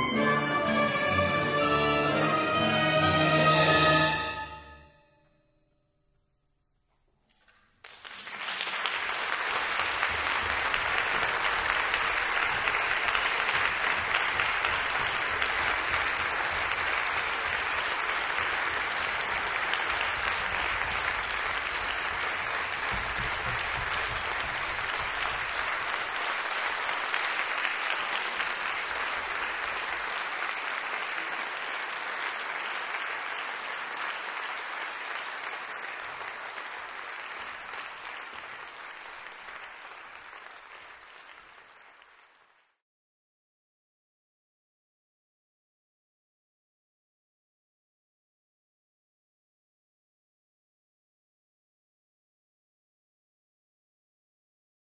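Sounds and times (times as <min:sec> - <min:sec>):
audience applauding: 0:07.3 - 0:42.8.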